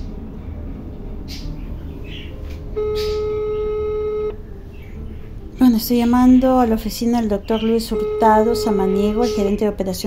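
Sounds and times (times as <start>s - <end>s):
telephone line beep: 2.8s - 4.4s, 7.9s - 9.6s.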